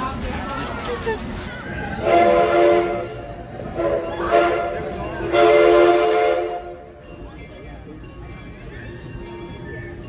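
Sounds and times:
steam locomotive chime whistle: 2.0s - 6.7s.

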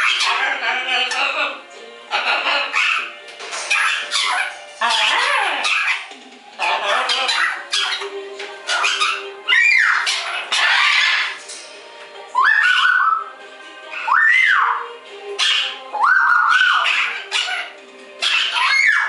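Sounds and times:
macaw squawking: 0.0s - 11.4s, 12.4s - 13.3s, 13.9s - 19.0s
television music: 0.0s - 19.0s.

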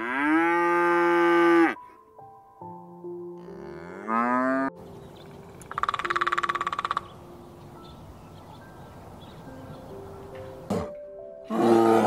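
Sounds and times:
cow mooing: 0.0s - 1.8s, 3.4s - 4.7s, 11.5s - 12.0s.

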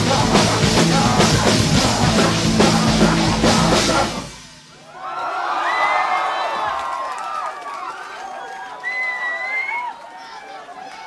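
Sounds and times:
audience cheering and whooping: 4.8s - 11.0s.

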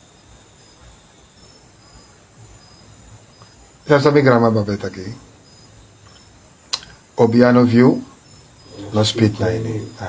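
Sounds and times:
insects chirping: 0.0s - 10.0s
insects trilling: 0.0s - 10.0s.

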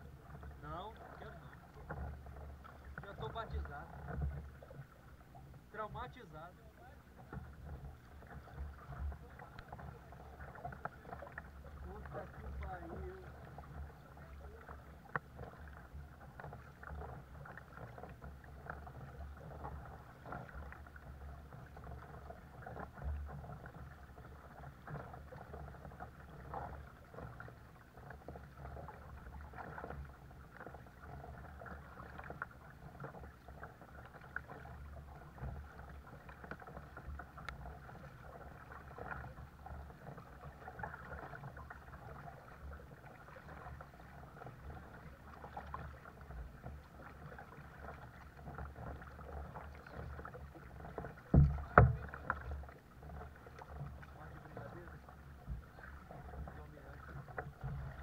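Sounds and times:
paddle splashing in water: 0.0s - 58.0s
water washing along hull: 0.0s - 58.0s.

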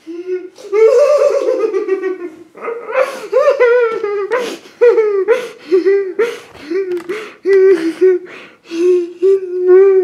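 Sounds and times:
woman laughing high-pitched: 0.5s - 8.2s.

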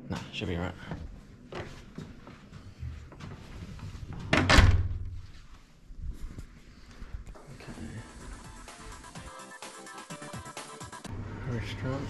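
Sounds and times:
door swinging shut with thud: 4.3s - 5.1s.

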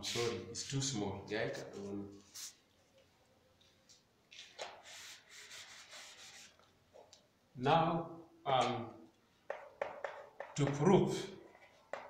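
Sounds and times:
wiping chalk off a blackboard: 1.6s - 2.8s, 4.5s - 6.8s.

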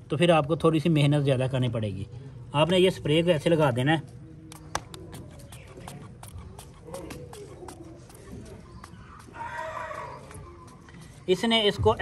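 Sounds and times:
chicken calling: 6.8s - 11.1s.

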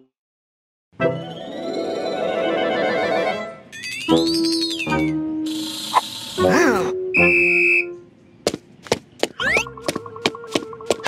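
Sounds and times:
shrill police whistle blast: 7.2s - 8.0s
cartoon running footsteps: 8.5s - 11.0s.

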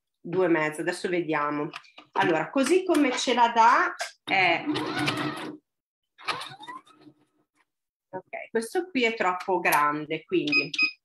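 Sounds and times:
sewing machine stitching: 4.3s - 5.6s.

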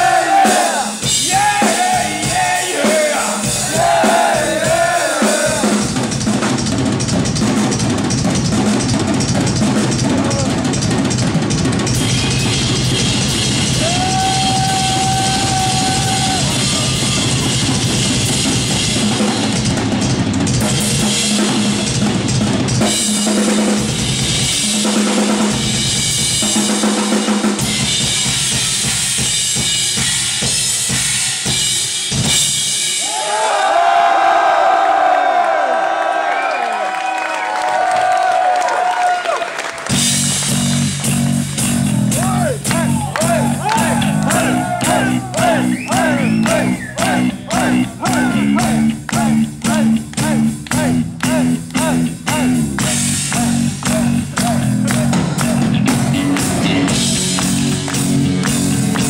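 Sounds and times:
crowd cheering: 0.0s - 6.0s, 11.9s - 18.0s, 33.0s - 59.0s
drum kit solo: 0.0s - 33.2s, 39.8s - 59.0s.

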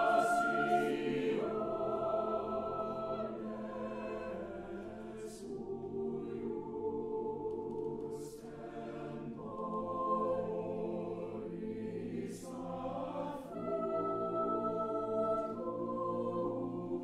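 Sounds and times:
choir singing held chords: 0.0s - 17.0s.

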